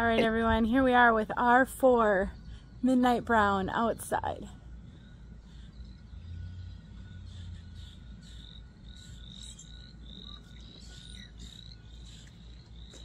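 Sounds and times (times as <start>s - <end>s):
low rumble: 0.0s - 12.9s.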